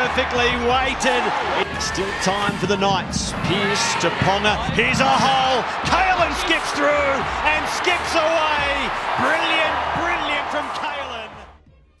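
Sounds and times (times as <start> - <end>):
stadium crowd noise: 0.0 - 11.6.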